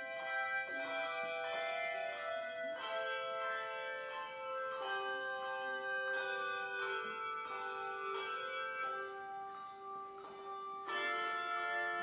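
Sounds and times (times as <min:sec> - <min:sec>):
handbell chords ringing: 0:00.0 - 0:12.0.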